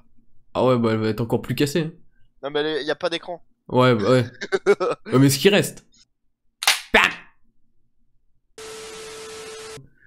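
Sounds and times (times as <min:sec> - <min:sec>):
slingshot release crack: 0:06.6 - 0:06.9.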